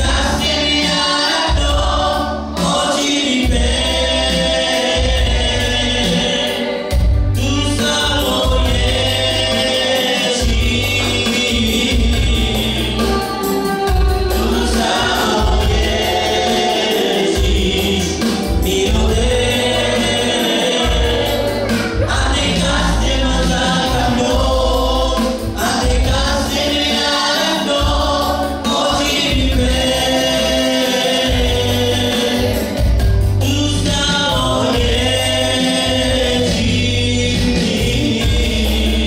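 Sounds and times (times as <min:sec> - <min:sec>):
electronic keyboard chords: 0:00.0 - 0:39.0.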